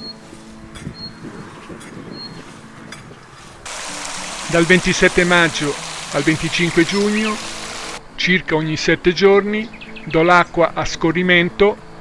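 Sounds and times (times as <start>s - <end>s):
water pouring from a hose: 3.7s - 8.0s.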